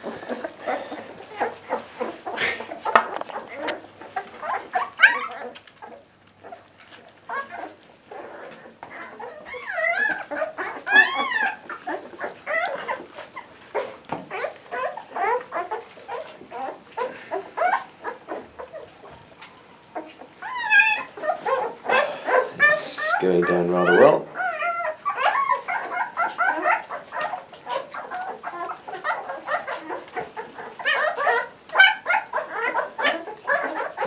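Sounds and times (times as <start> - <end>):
puppies chewing and smacking: 0.0 - 34.0
puppy whines: 0.0 - 34.0.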